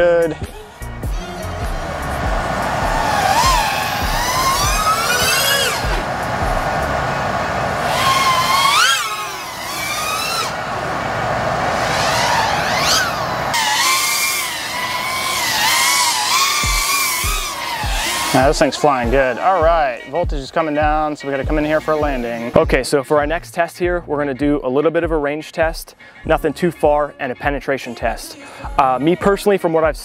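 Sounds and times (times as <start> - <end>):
music with steady beat: 0.0 - 7.2, 16.6 - 30.0
drone motors whining: 0.0 - 20.1.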